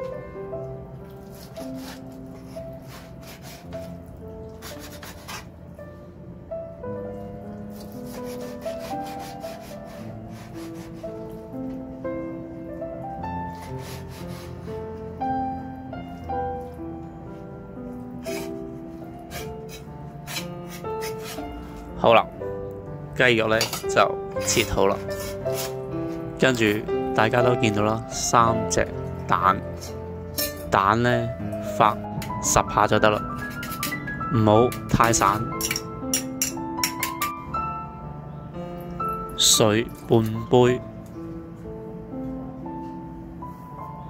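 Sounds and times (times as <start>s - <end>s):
background music: 0.0s - 44.0s
blade scraping pieces together: 4.6s - 5.5s, 19.3s - 21.8s, 24.5s - 25.8s.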